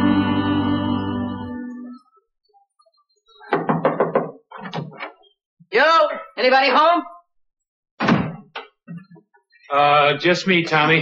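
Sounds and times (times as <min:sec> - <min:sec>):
wooden door thunking shut: 0:08.0 - 0:08.5.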